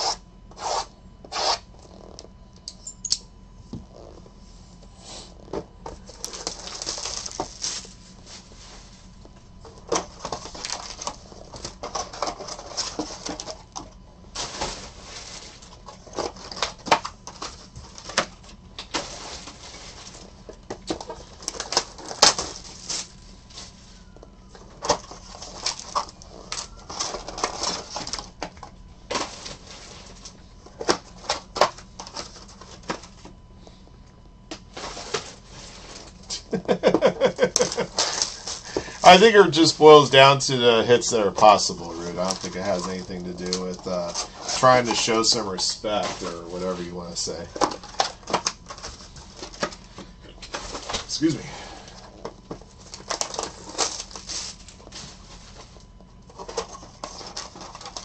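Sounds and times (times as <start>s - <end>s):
shrink wrap crinkling and tearing: 6.0s - 8.1s, 35.9s - 51.4s, 52.1s - 58.0s
man laughing: 36.3s - 38.2s.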